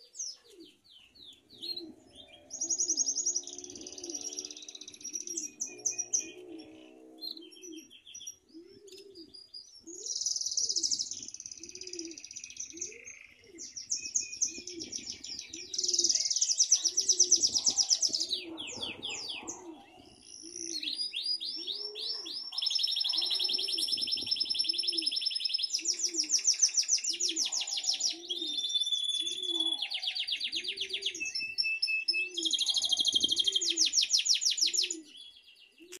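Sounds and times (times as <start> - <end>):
canary singing rolling trills: 0.0 - 36.0.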